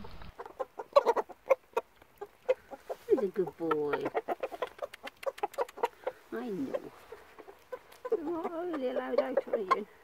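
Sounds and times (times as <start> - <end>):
rooster clucking: 0.2 - 10.0.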